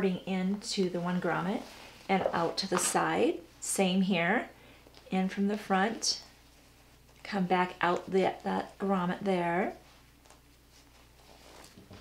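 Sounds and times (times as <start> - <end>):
rope and fabric rustling: 9.6 - 12.0.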